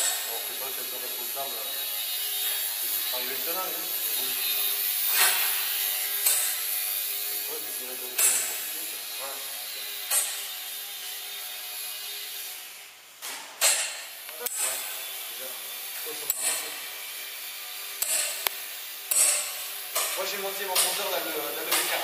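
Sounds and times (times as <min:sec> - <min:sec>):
small propeller motor buzzing: 0:00.0 - 0:12.5
sharp knocks: 0:13.2 - 0:14.8, 0:19.1 - 0:20.2.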